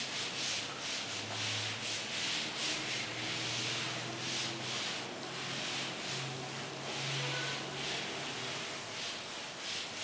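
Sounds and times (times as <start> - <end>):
duster rubbing on chalkboard: 0.0 - 10.0.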